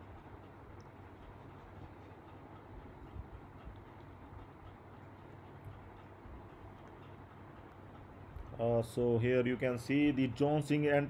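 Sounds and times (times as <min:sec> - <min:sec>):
faint low hum with hiss: 0:00.0 - 0:11.0.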